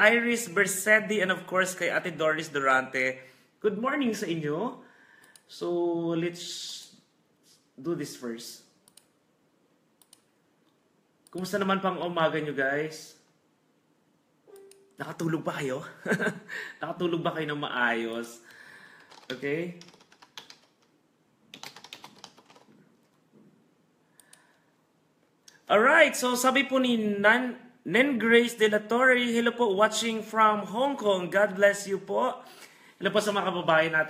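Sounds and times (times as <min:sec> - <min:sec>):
faint clicks: 0:08.8 - 0:09.1, 0:10.0 - 0:11.4.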